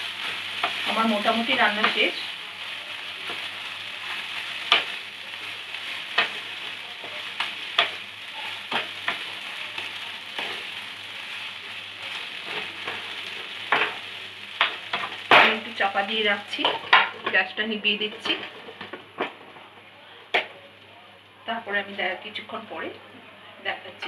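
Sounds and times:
food sizzling in a wok: 0.0 - 22.9.

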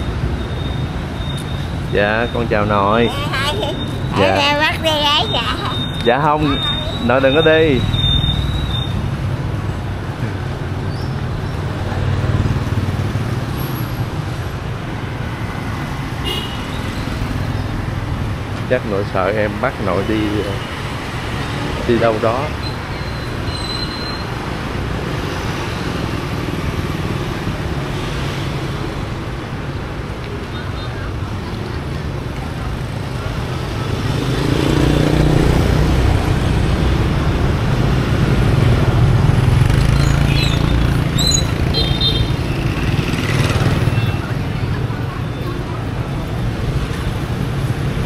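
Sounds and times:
motorbikes and scooters passing: 0.0 - 48.0.

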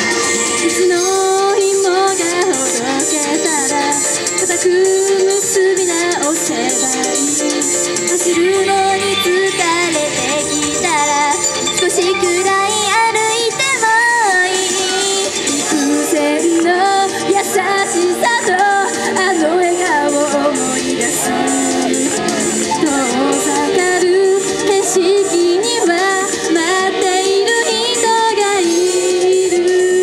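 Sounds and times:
backing track with steady beat: 0.0 - 30.0
girls singing pop song: 0.0 - 30.0.

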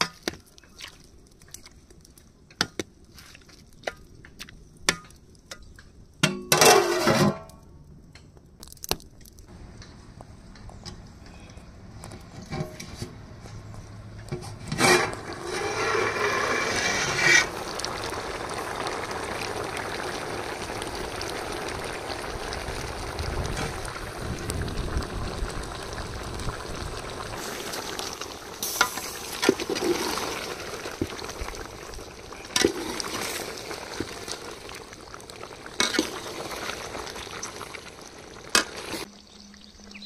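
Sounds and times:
pot boiling and bubbling: 0.0 - 40.0.

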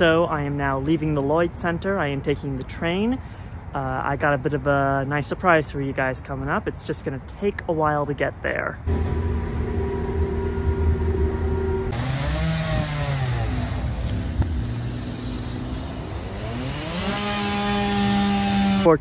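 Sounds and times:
train rumble and hum: 8.9 - 12.0.

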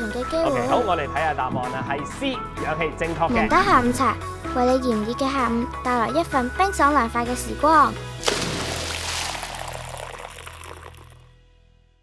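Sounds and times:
drink poured into a glass: 8.2 - 11.2.

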